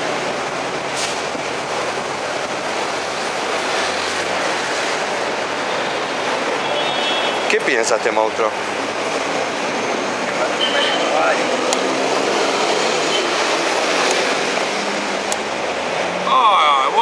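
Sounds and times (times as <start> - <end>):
outdoor street noise: 0.0 - 17.0.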